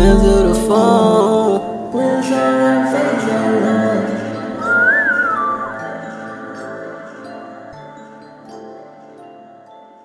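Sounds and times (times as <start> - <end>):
high whistle-like melody: 4.6 - 8.6.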